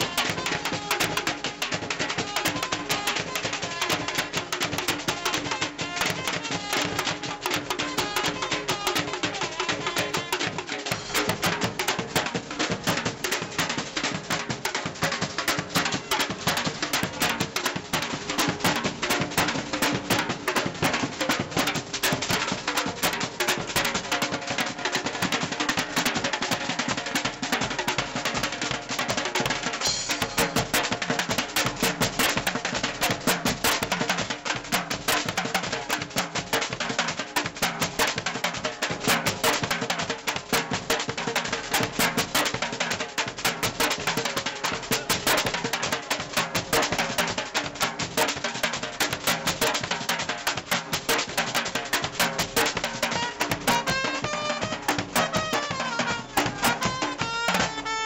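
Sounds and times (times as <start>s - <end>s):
street drum band playing: 0.0s - 58.0s.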